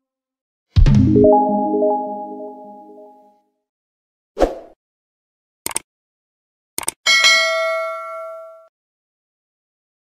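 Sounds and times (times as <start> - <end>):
bell ding: 7.1 - 8.7.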